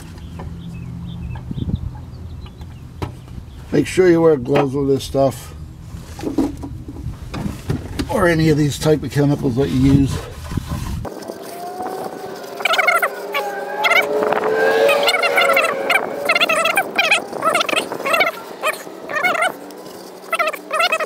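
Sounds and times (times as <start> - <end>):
rapid warbling animal calls: 11.5 - 19.6, 20.2 - 21.0.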